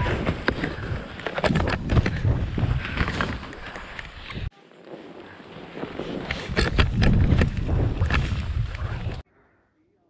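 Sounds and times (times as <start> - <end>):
skis scraping over snow: 2.1 - 9.2
wind buffeting microphone: 6.2 - 9.2.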